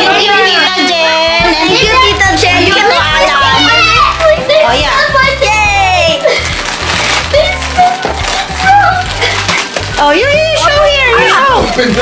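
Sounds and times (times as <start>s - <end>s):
children's excited voices: 0.0s - 6.3s.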